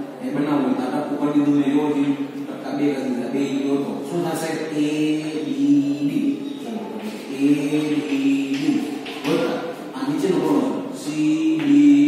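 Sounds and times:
man chanting in held notes: 0:07.2 - 0:12.0.

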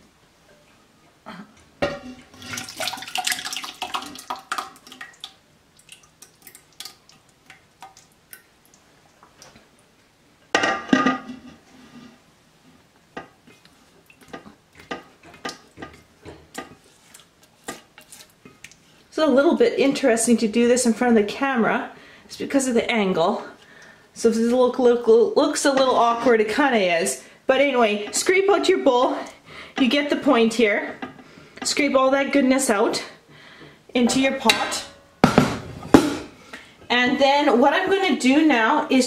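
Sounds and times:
knocks and scrapes against pot: 0:01.8 - 0:02.6, 0:10.6 - 0:12.2, 0:14.2 - 0:18.7, 0:34.0 - 0:36.3
broth pouring and splashing: 0:02.2 - 0:08.8.

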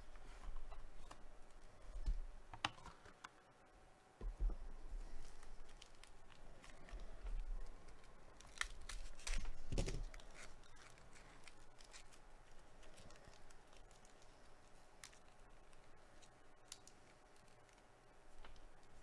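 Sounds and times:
foil wrapper tearing and crinkling: 0:05.1 - 0:19.0.

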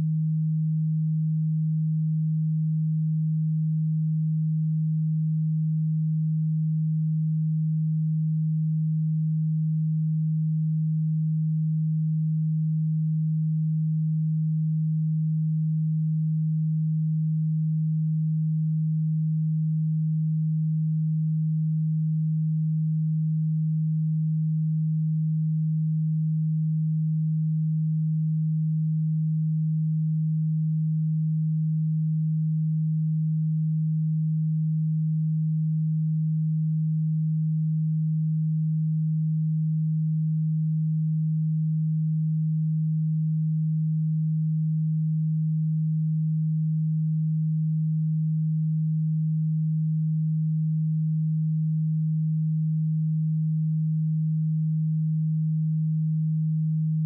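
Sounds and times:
low pure sine tone: 0:00.0 - 0:57.0.

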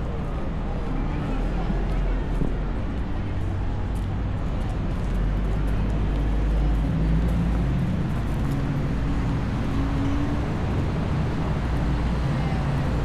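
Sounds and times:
heavier engine hum: 0:00.0 - 0:13.0
passing car engines rumbling: 0:00.0 - 0:13.0.

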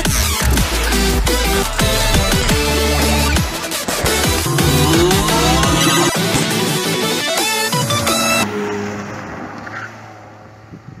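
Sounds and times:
car driving away: 0:00.2 - 0:11.0.

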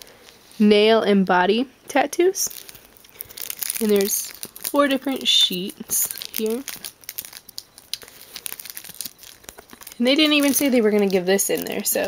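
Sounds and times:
paper sheets crinkling: 0:02.5 - 0:12.0.

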